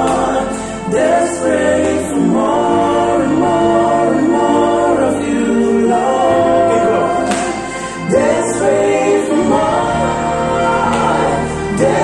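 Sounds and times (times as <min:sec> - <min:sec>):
men singing gospel: 0:00.0 - 0:12.0.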